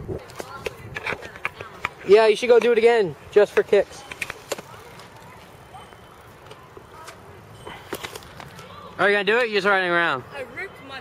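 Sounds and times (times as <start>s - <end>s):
bmx bike rolling on concrete: 0.0s - 11.0s
distant voices: 0.0s - 11.0s.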